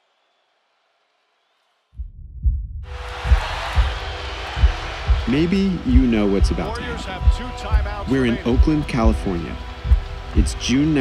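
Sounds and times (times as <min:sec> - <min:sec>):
heartbeat thumps: 0:02.0 - 0:11.0
arena crowd noise: 0:02.9 - 0:11.0.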